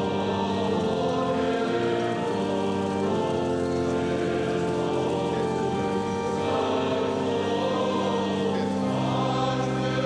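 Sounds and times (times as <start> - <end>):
choir singing a chant: 0.0 - 10.0.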